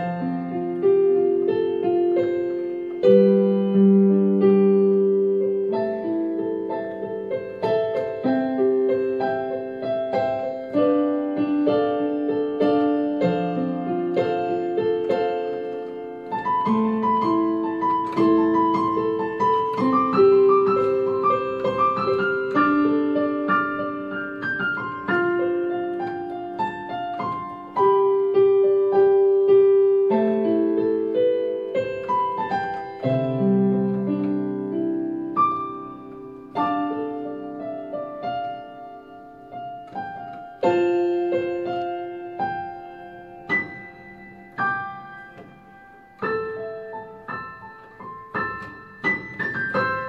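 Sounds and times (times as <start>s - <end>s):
keyboard playing piano melody: 0.0s - 50.0s.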